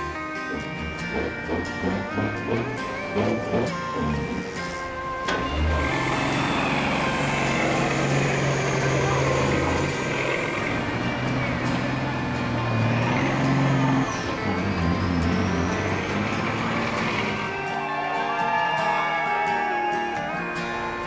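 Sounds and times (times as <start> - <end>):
diesel truck engine under load: 0.0 - 17.8
music: 0.0 - 21.0.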